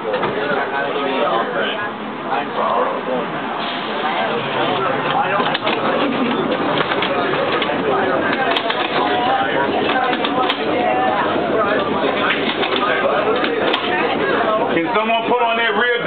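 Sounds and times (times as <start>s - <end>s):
passengers chattering: 0.0s - 16.0s.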